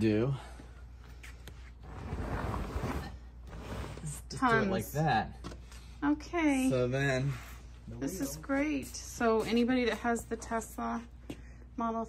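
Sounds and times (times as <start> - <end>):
folded stroller scraping on rubber mat: 1.8 - 4.4.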